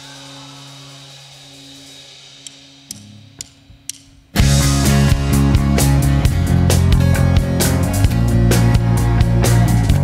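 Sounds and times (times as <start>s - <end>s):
rock band playing: 0.0s - 10.0s
drumstick count-in clicks: 2.4s - 4.3s.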